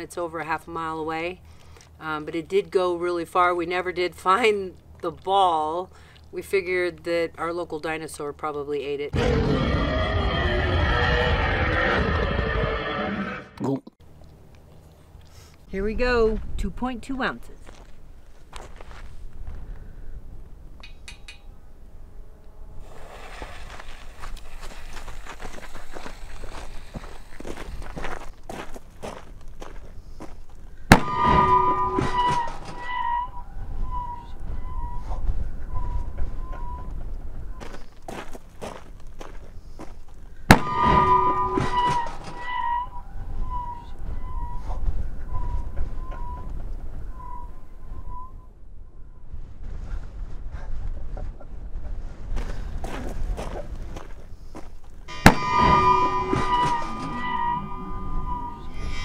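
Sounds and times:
fuse hissing and crackling: 0:22.8 - 0:27.4
cannon boom: 0:30.9 - 0:32.8, 0:40.5 - 0:42.4, 0:55.1 - 0:57.1
wavering ringing tone: 0:31.0 - 0:36.9, 0:40.6 - 0:44.7, 0:55.1 - 0:59.0.

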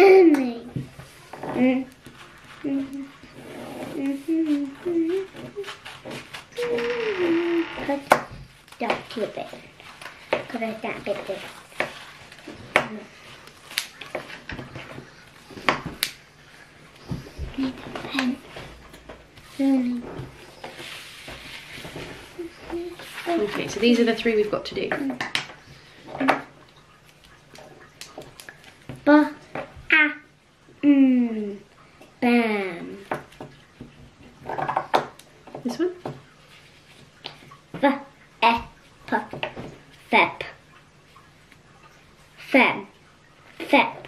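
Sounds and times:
person humming a tune: 0:06.6 - 0:07.7.

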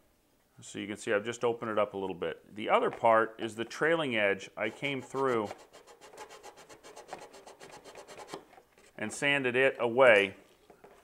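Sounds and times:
sanding dowel rubbing on wood: 0:04.6 - 0:08.4.

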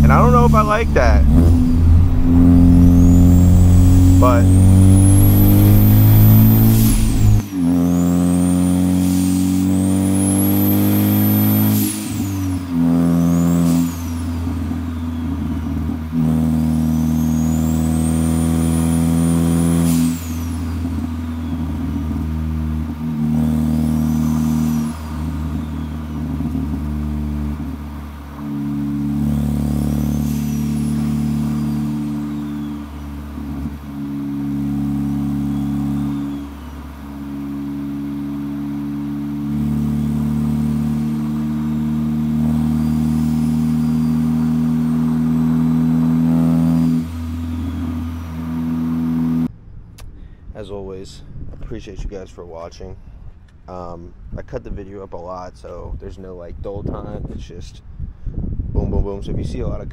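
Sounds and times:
turbo whine: 0:00.0 - 0:49.5
car engine accelerating: 0:00.0 - 0:50.1.

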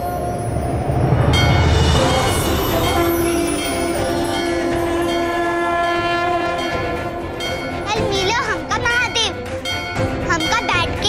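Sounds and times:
conch shell blown: 0:02.0 - 0:07.8.

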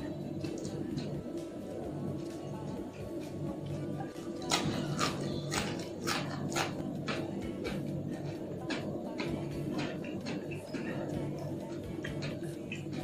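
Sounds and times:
background music: 0:00.0 - 0:13.0
crunchy chewing: 0:00.0 - 0:13.0.

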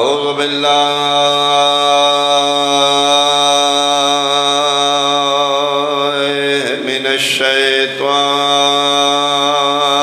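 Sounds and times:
congregation chanting over loudspeaker: 0:00.0 - 0:10.0.

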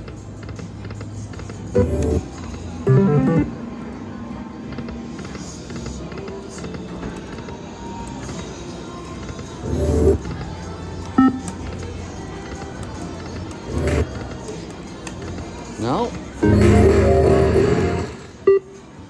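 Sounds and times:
casino background noise: 0:00.0 - 0:19.0
slot machine game music: 0:01.8 - 0:03.7, 0:09.7 - 0:10.2, 0:11.2 - 0:11.5, 0:13.8 - 0:14.1, 0:16.4 - 0:18.6.

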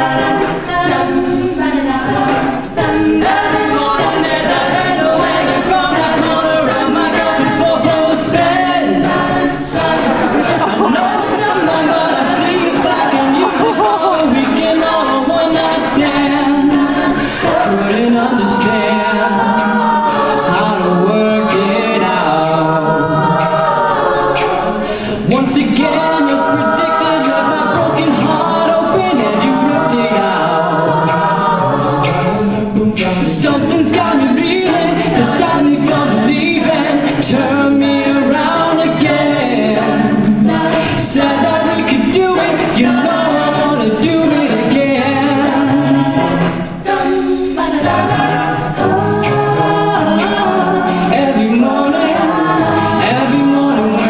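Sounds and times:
a cappella group singing: 0:00.0 - 0:54.0.

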